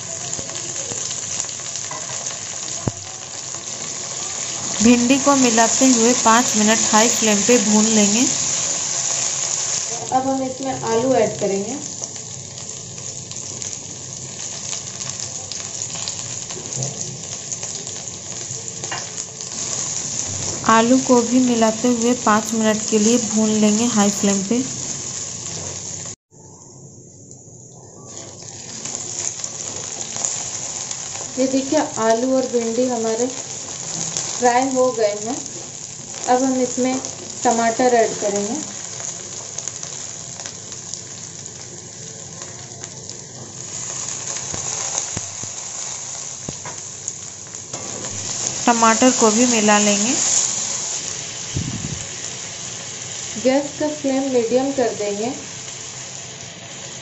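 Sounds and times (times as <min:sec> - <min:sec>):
vegetables sizzling in oil: 0:00.0 - 0:26.2, 0:27.6 - 0:57.0.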